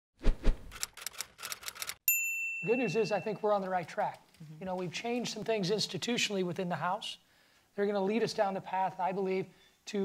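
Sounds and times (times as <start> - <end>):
sharp clicks: 0.7 - 2.0.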